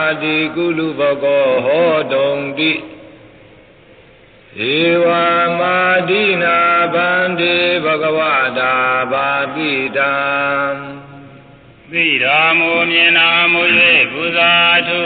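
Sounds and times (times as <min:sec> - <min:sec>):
person chanting in long notes: 0:04.6 - 0:15.0.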